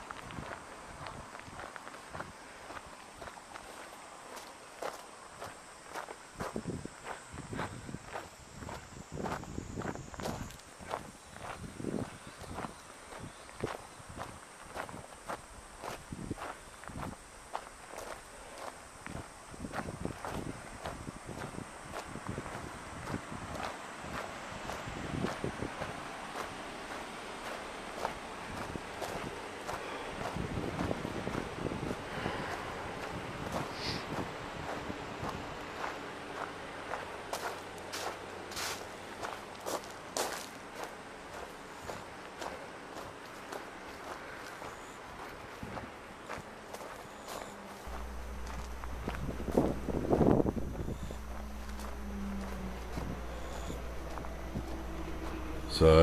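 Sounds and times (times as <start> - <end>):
footsteps on gravel and grass: 45.6 - 56.0
faint low hum: 47.3 - 56.0.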